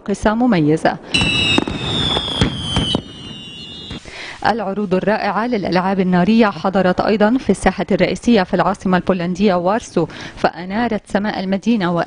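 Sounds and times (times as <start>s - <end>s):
firework bangs: 1.0s - 4.5s
fireworks crackling: 1.0s - 5.5s
firework whistle gliding down: 1.1s - 4.1s.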